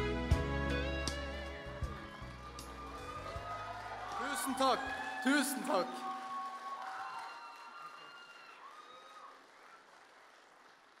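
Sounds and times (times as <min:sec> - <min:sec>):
people cheering: 0:01.6 - 0:11.0
audience applause: 0:02.0 - 0:11.0.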